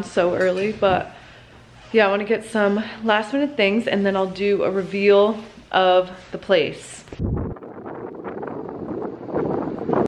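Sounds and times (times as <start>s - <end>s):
wind buffeting microphone: 0.5s - 1.2s, 7.1s - 10.0s.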